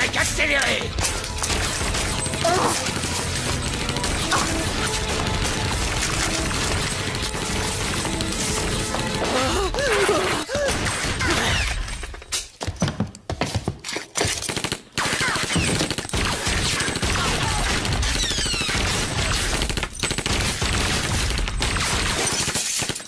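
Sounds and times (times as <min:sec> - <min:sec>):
automatic gunfire: 0:01.3 - 0:09.4, 0:14.5 - 0:23.0.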